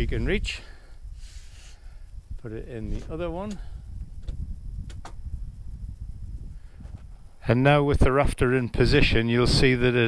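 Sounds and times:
wind rumble on microphone: 0.0s - 10.0s
small clicks and knocks: 2.9s - 5.2s.

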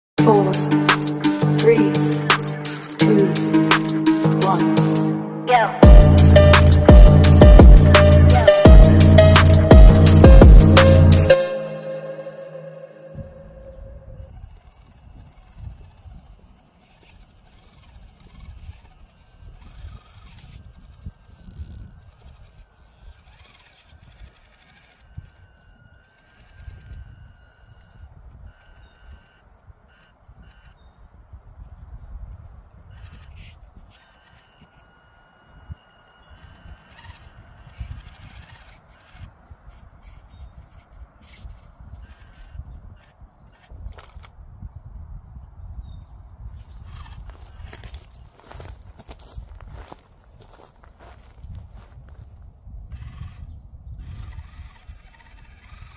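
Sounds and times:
small electric motor whining: 0.2s - 5.0s, 13.2s - 31.1s, 31.8s - 44.8s, 46.4s - 55.9s
wind rumble on microphone: 13.2s - 24.4s, 29.7s - 34.0s, 36.4s - 55.9s.

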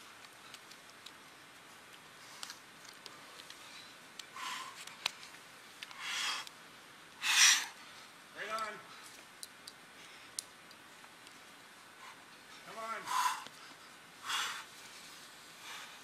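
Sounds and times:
person breathing hard: 3.1s - 4.9s, 13.0s - 14.8s, 15.5s - 16.0s.

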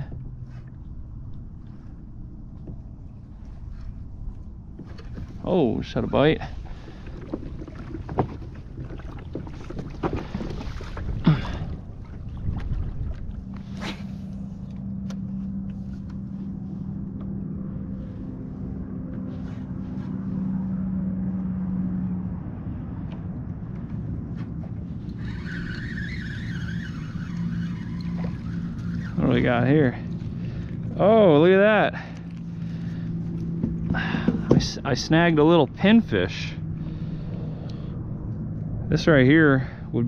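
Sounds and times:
steady low hum: 0.0s - 40.0s
fishing reel spinning: 25.0s - 30.4s.

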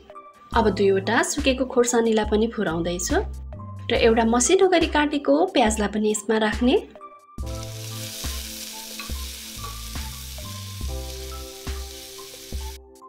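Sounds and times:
onions sizzling in hot oil: 7.4s - 12.8s.

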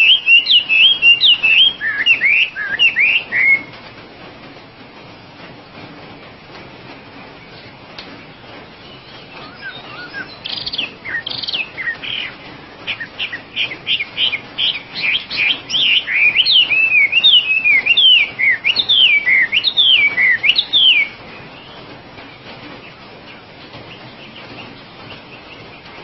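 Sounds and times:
bird singing whistled phrases: 0.0s - 3.7s, 8.8s - 21.8s.

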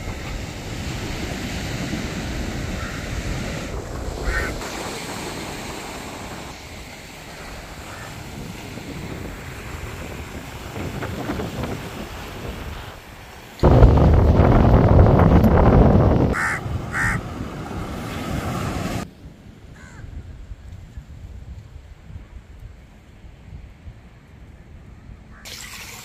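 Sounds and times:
surf washing on beach: 0.0s - 19.3s
wind buffeting microphone: 0.0s - 25.3s
crow cawing: 2.8s - 3.0s, 4.2s - 4.6s, 7.9s - 8.2s, 16.3s - 17.2s, 19.8s - 20.1s.

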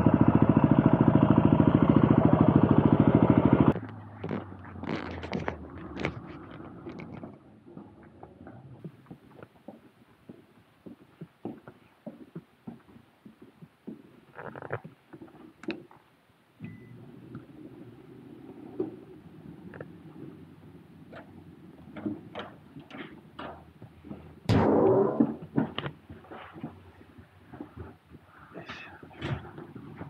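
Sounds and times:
footsteps indoors: 8.0s - 16.0s.

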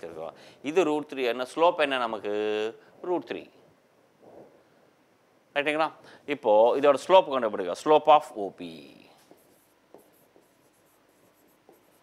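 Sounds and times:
stylus tapping on touchscreen: 9.3s - 12.0s.

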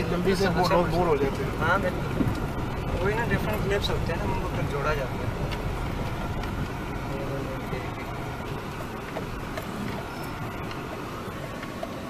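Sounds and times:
engine and tyre rumble: 0.0s - 12.0s.

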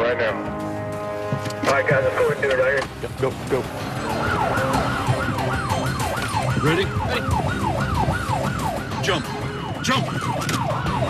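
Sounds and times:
low hum of moving vehicle: 0.5s - 11.0s
emergency siren yelping: 3.7s - 11.0s.

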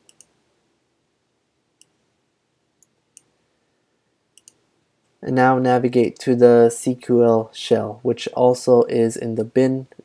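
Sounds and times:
faint computer mouse clicks: 0.0s - 0.3s, 4.4s - 4.6s.

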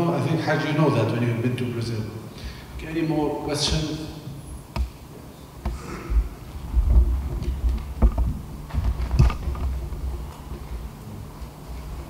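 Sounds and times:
microphone handling thumps: 5.6s - 11.0s.

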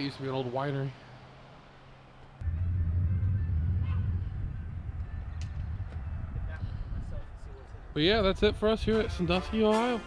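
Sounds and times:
steady low rumble: 2.4s - 8.8s.

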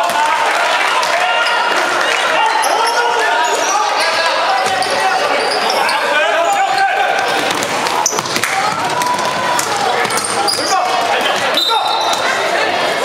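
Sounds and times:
people calling out: 0.0s - 13.0s
basketball bouncing on hardwood: 7.4s - 10.3s.

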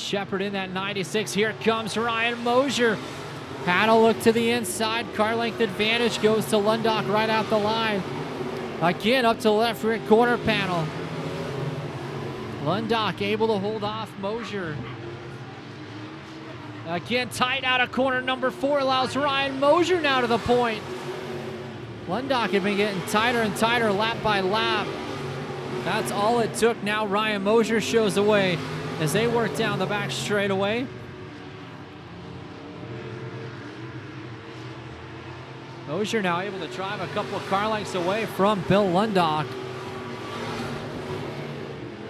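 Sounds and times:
race car engines droning: 0.0s - 42.0s.

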